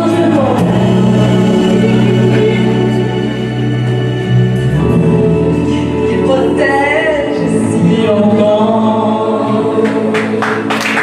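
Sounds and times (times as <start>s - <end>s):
group of voices singing: 0.0s - 11.0s
music: 0.0s - 11.0s
people clapping: 9.8s - 11.0s.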